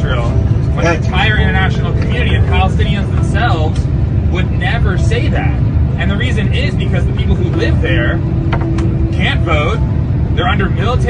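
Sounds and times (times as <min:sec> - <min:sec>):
bus engine and road noise: 0:00.0 - 0:11.0
people arguing: 0:00.7 - 0:02.2.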